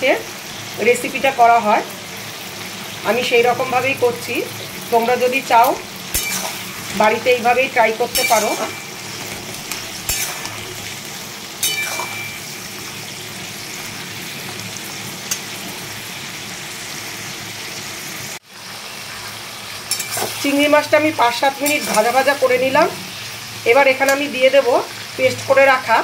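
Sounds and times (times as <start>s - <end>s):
prawns sizzling in hot oil: 0.0s - 26.0s.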